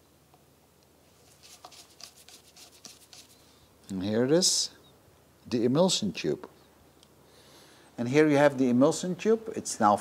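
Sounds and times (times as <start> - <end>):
faint scratching: 1.1 - 3.4.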